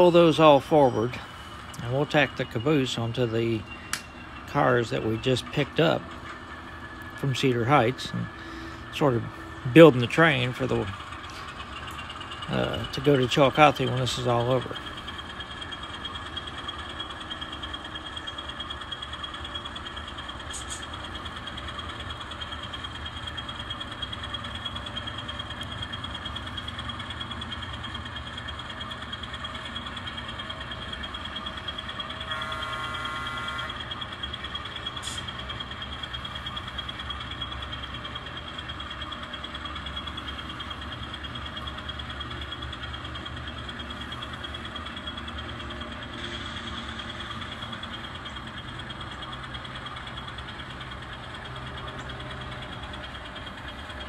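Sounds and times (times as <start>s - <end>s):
constant high whine: 0.0s - 54.0s
model locomotive diesel engine sound: 0.0s - 54.0s
short horn: 32.3s - 33.8s.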